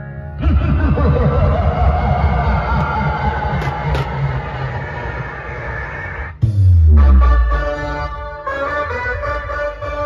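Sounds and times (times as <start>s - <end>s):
large drums rumbling: 0.4s - 6.8s.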